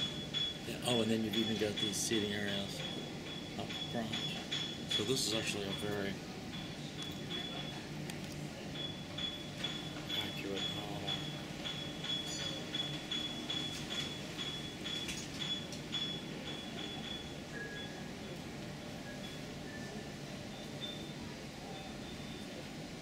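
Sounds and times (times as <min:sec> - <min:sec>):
faint high-pitched beeps: 0:00.0 - 0:07.9, 0:08.6 - 0:23.0
steady background hum: 0:00.0 - 0:23.0.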